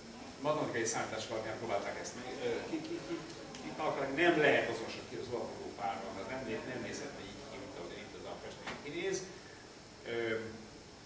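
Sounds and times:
man lecturing: 0.4 - 9.4.

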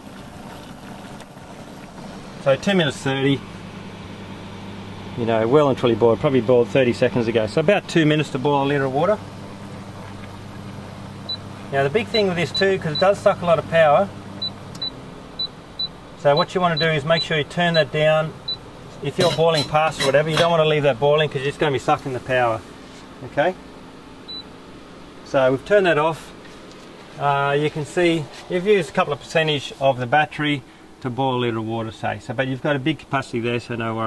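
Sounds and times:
water boiling in a saucepan: 0.0 - 4.9
cooktop electrical hum: 0.0 - 34.0.

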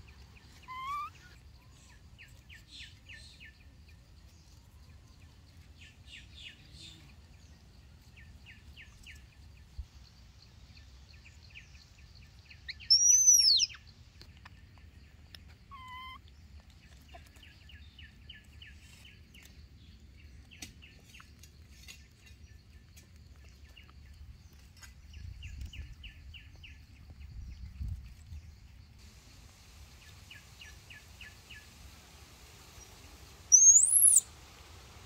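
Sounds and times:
birds chirping: 0.0 - 4.3, 5.0 - 21.3, 32.7 - 34.3.

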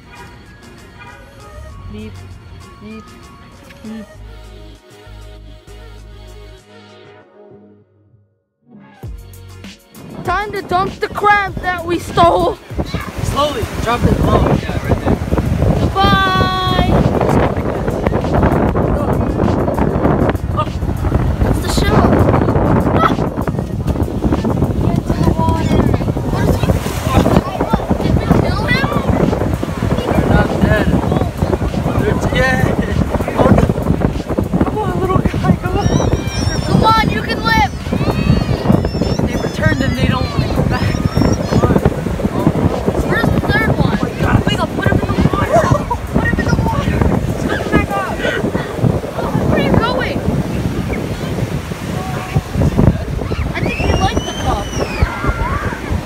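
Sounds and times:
beach surf: 0.0 - 4.1, 9.2 - 56.0
voices: 0.0 - 4.6, 10.0 - 56.0
wind buffeting microphone: 10.0 - 56.0
high drawn-out cry: 35.7 - 41.7.

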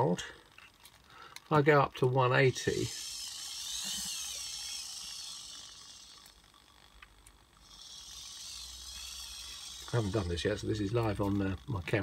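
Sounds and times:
servo motor whining: 2.4 - 12.0.

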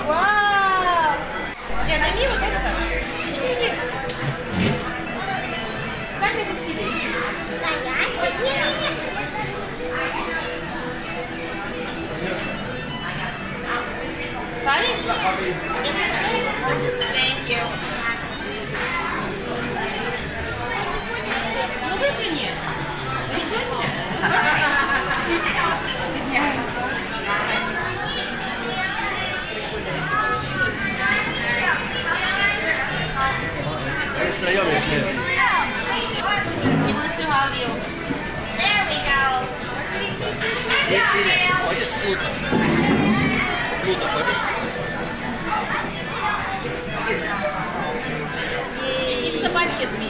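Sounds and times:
children's voices chattering: 0.0 - 50.0
children's voices: 42.5 - 44.6.

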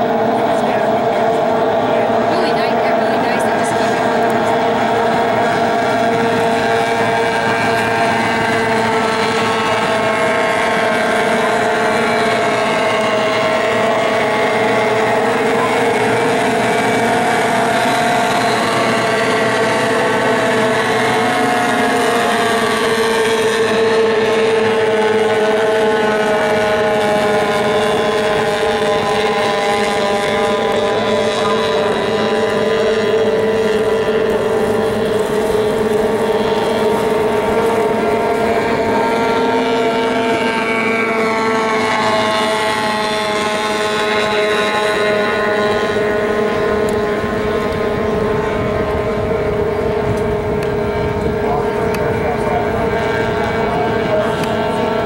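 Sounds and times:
racing boat engines buzzing: 0.0 - 55.0.

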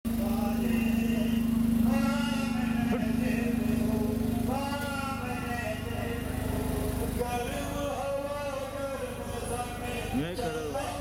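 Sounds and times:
engine running: 0.1 - 11.0.

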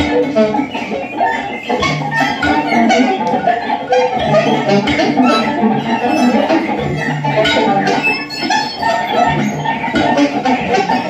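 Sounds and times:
kalimba: 1.8 - 10.4
violin: 4.2 - 10.6
alto saxophone: 5.0 - 6.6.

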